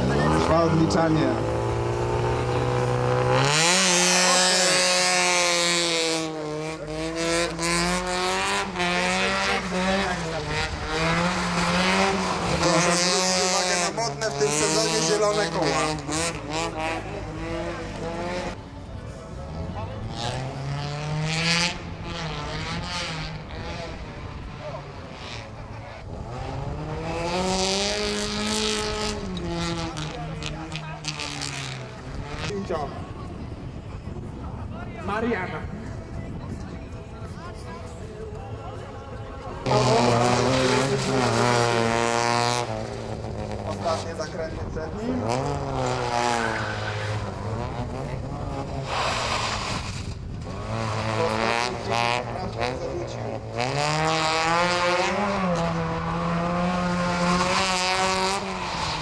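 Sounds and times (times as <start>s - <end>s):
car engine revving: 0.0s - 33.8s, 37.8s - 59.0s
tyres on gravel rushing: 48.8s - 51.0s.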